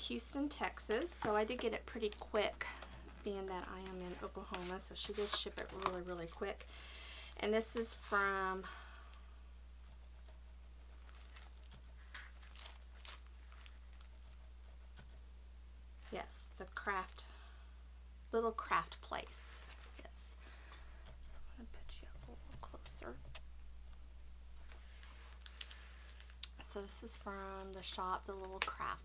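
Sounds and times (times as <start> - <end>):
steady low hum: 0.0 - 29.0
cellophane rustling on tabletop: 0.6 - 6.6, 10.0 - 15.1, 24.5 - 26.4
plastic sleeve crinkling: 10.9 - 14.4, 24.5 - 26.7.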